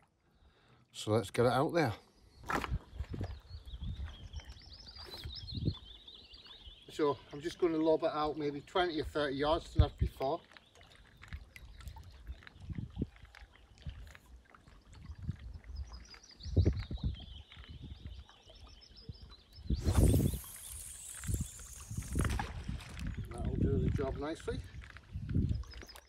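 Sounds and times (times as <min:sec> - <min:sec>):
fishing line falling whine: 0:19.6 - 0:23.2.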